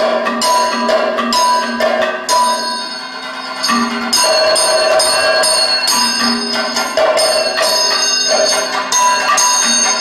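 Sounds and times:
bell-metal percussion ringing: 0.0s - 10.0s.

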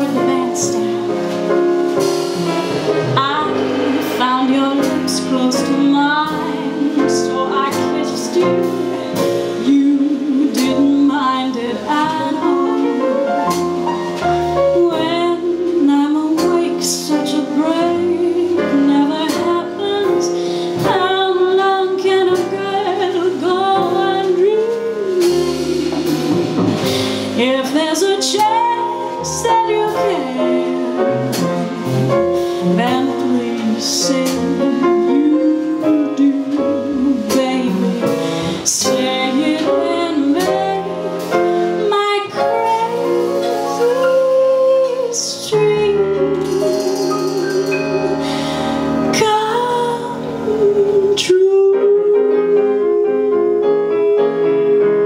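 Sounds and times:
jazz band playing slow ballad: 0.0s - 55.0s
upright bass line: 23.2s - 27.8s, 45.8s - 49.7s
light percussion strokes: 46.1s - 49.2s.

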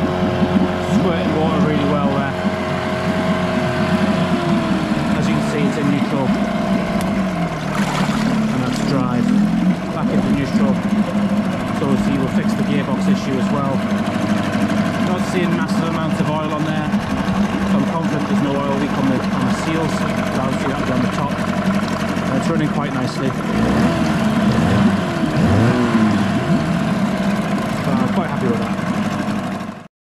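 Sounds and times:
outboard engine running: 0.0s - 29.9s
propeller churning water: 0.0s - 29.9s.

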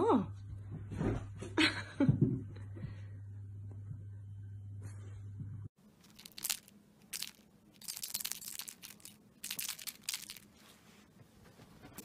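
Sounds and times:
crinkling and rustling: 5.8s - 12.0s.

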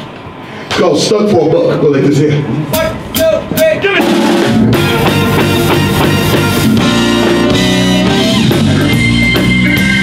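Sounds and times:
blues band playing: 2.6s - 10.0s
sharp drum hits: 2.8s - 8.7s.

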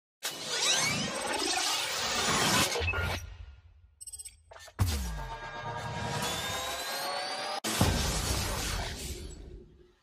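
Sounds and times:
loud noisy crash: 7.6s - 9.7s.

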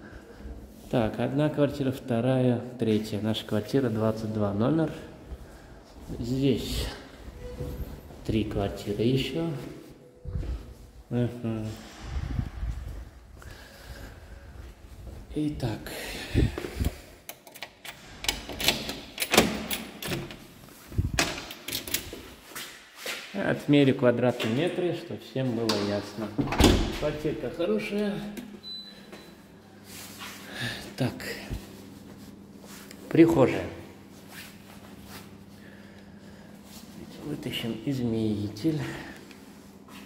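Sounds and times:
person rustling and shuffling: 4.9s - 17.2s, 20.4s - 21.2s, 29.1s - 40.0s
door lock clicks and clunks: 17.3s - 20.4s.

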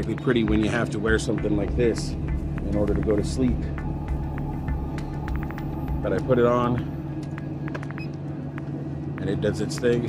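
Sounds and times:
cpap machine humming: 0.0s - 10.0s.

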